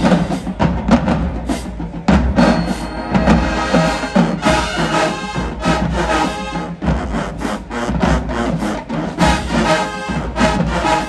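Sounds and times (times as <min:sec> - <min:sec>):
marching band playing: 0:00.0 - 0:11.0.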